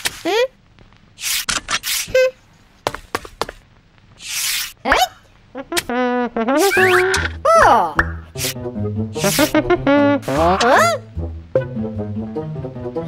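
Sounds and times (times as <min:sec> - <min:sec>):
cartoon swishes: 0:04.2 - 0:05.2, 0:06.6 - 0:07.2, 0:08.2 - 0:11.0
cartoon rising squeak: 0:05.8 - 0:07.8, 0:10.2 - 0:11.0.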